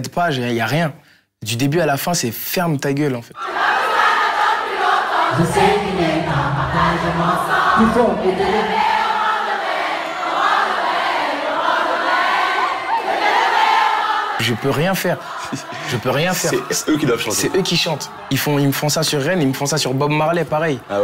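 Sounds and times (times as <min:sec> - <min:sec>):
crowd singing in unison: 0:03.4 - 0:21.0.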